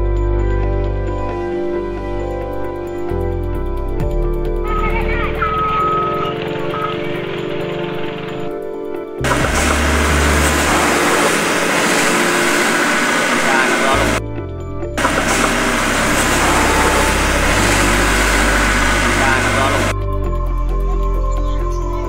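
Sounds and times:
background music with bass line: 0.0 - 22.0
voices: 4.6 - 8.5, 9.2 - 14.2, 15.0 - 20.0
loud rushing noise: 9.2 - 14.2, 15.0 - 20.0.

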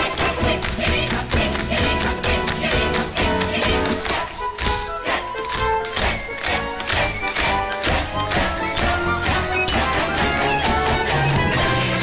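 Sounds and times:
orchestra music: 0.0 - 12.0.

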